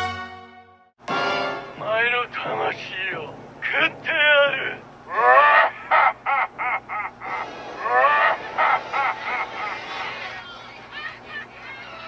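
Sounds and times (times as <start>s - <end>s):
cartoon man cackling laugh: 5.1s - 10.2s.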